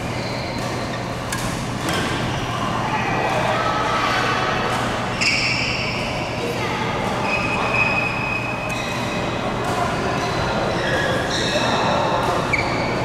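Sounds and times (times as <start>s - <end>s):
sports shoes squeaking on floor: 0.0s - 1.1s, 5.1s - 6.0s, 7.2s - 9.4s, 10.2s - 13.0s
voices echoing in hall: 0.0s - 13.0s.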